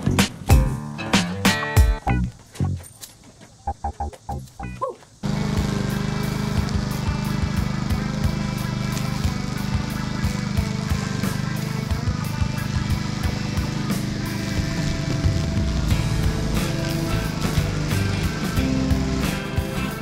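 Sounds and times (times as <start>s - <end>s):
background music with steady beat: 0.0s - 2.8s, 6.3s - 20.0s
lawn mower running: 5.2s - 20.0s.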